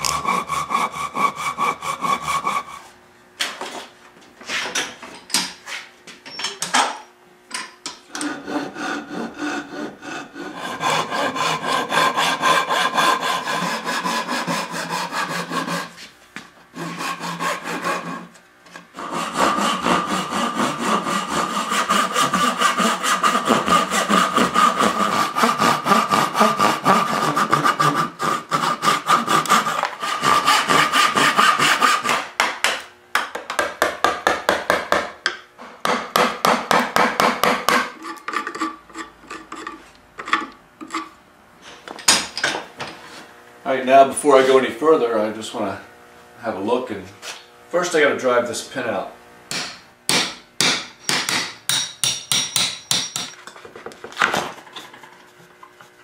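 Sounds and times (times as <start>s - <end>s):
hand saw cutting wood: 0.0s - 3.0s, 8.1s - 16.1s, 16.7s - 32.4s, 35.6s - 41.2s.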